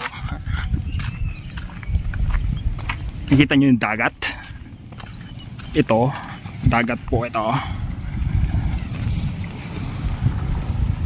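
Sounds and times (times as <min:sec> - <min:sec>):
wind rumbling on microphone: 0:00.0 - 0:11.0
footsteps and handling knocks: 0:01.0 - 0:03.4, 0:04.3 - 0:06.4.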